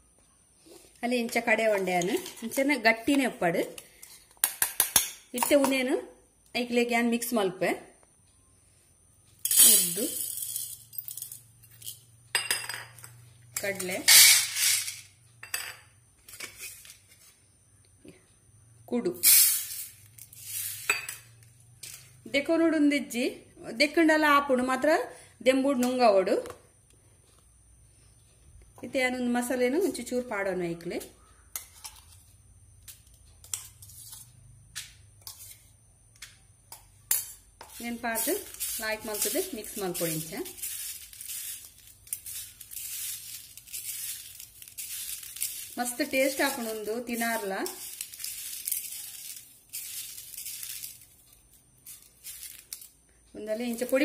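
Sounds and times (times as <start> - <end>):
chickpeas rattling on metal plate: 9.4 - 15.7, 19.2 - 22.2, 37.0 - 54.0.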